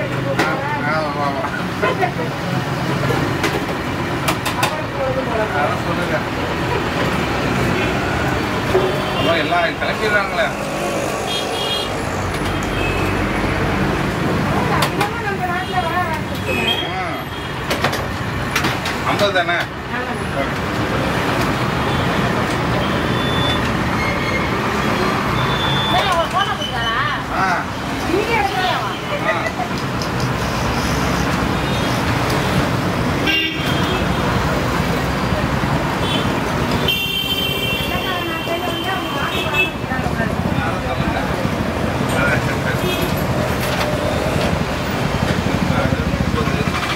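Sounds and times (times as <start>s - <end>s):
road traffic rumble: 0.0s - 46.9s
voices: 4.2s - 18.0s, 24.7s - 31.8s, 36.9s - 46.9s
car horns honking: 7.7s - 10.2s, 33.2s - 34.3s, 36.0s - 39.9s
voices talking: 24.6s - 32.2s.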